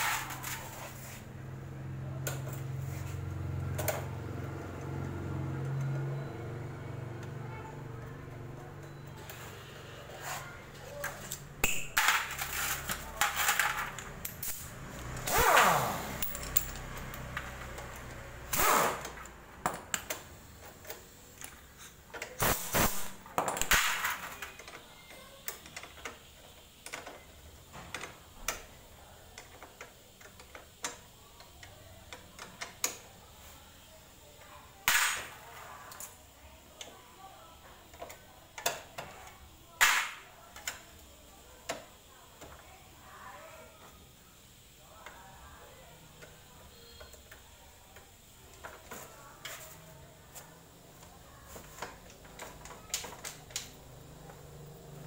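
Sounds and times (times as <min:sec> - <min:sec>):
metal tools clinking: 0:16.2 - 0:17.0.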